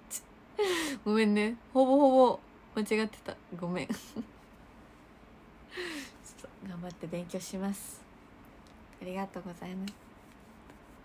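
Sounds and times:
woman speaking: 0:00.9 - 0:04.2, 0:06.2 - 0:08.0, 0:09.0 - 0:10.0
woman breathing in: 0:05.7 - 0:06.2.

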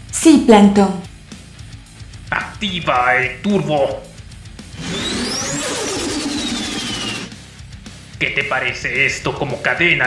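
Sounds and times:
background music: 0:00.0 - 0:10.0
mech motor whirring with high whine: 0:04.7 - 0:07.4.

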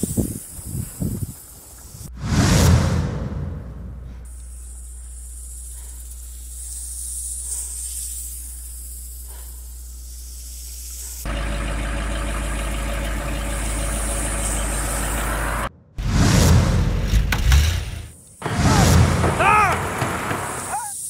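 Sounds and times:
pickup truck engine running: 0:11.3 - 0:15.7.

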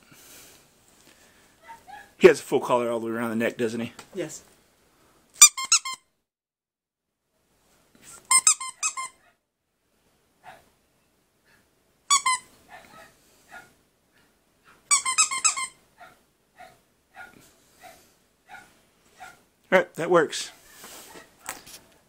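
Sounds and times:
squeaky dog toy squeaking: 0:05.4 - 0:06.1, 0:08.2 - 0:09.2, 0:12.1 - 0:12.8, 0:14.9 - 0:15.8.

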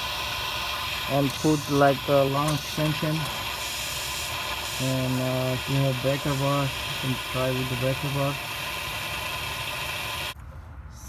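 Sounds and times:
torch flame hissing: 0:00.0 - 0:10.4.

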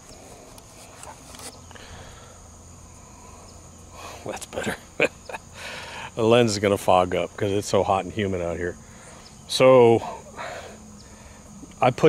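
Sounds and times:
camera handling rustles and clicks: 0:00.0 - 0:01.7
high-pitched insect drone: 0:00.0 - 0:12.0.

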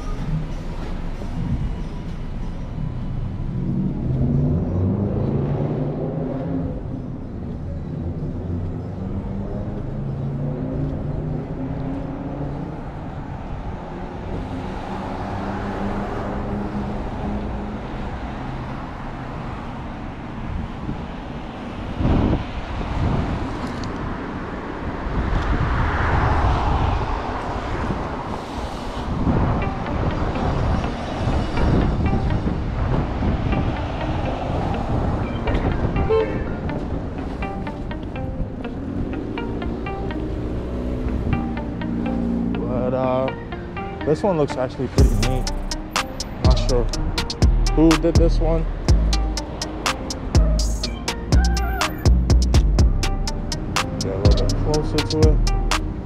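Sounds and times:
cars passing: 0:00.0 - 0:56.0
wind buffeting microphone: 0:20.4 - 0:37.7.

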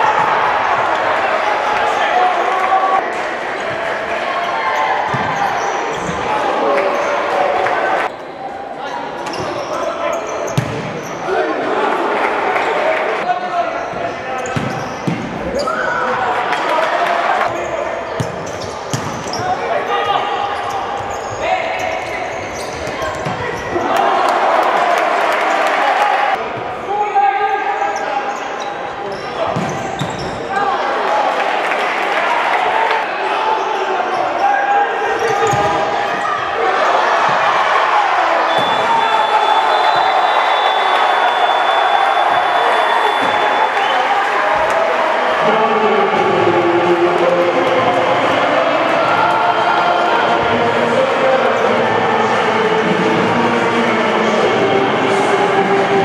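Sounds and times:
ball kicked and bouncing on court: 0:10.5 - 0:11.0, 0:14.5 - 0:15.4, 0:18.2 - 0:19.3, 0:29.5 - 0:30.2
shouting voices echoing: 0:19.3 - 0:56.0.

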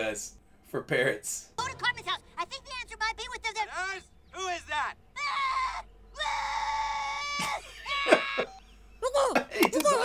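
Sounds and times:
high-pitched voice screaming: 0:05.2 - 0:08.6.

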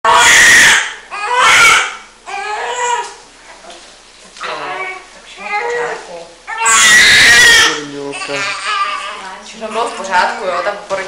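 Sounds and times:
baby crying: 0:00.0 - 0:03.2, 0:04.5 - 0:10.7.

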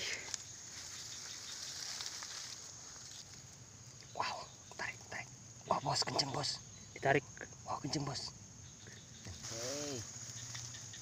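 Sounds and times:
grass rustling: 0:00.0 - 0:04.2, 0:09.0 - 0:11.0.

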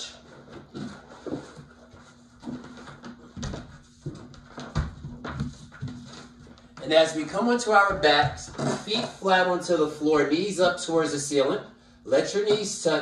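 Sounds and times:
faint steady hum: 0:00.0 - 0:13.0
soft thumps and rustles: 0:00.4 - 0:06.8.

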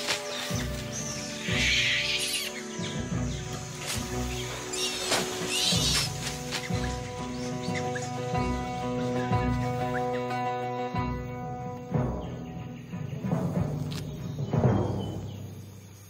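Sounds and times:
macaques calling harshly: 0:00.0 - 0:10.6
documentary music with pulsing beat: 0:00.0 - 0:16.0.

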